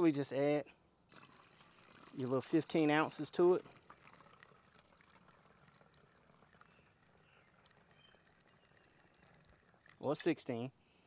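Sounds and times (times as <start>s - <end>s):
faint trickle of liquid pouring: 1.1s - 10.6s.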